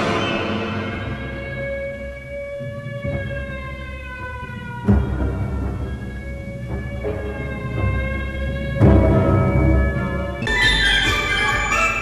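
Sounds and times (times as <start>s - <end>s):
siren-like tone falling in pitch: 0.0s - 3.6s.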